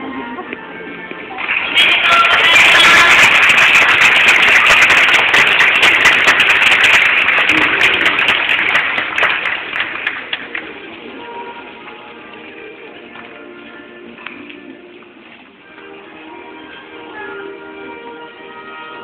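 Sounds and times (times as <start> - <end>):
background music: 0.0 - 19.0
audience clapping: 1.4 - 10.8.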